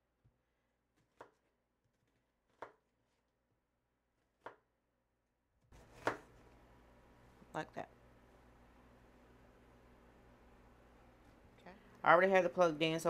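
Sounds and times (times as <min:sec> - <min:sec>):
knife cutting onion on board: 0:00.9 - 0:03.2, 0:04.2 - 0:04.7, 0:05.8 - 0:06.5.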